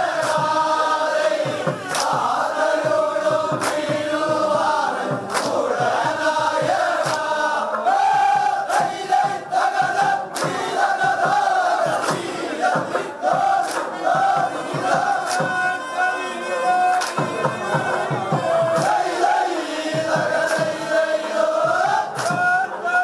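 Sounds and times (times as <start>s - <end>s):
men singing in unison: 0.0s - 23.0s
sharp rhythmic beat: 0.0s - 23.0s.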